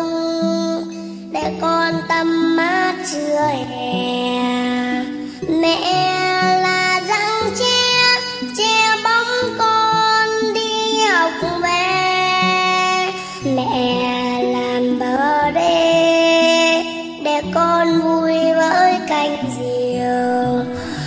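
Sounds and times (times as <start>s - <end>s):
girl singing: 0.0s - 21.0s.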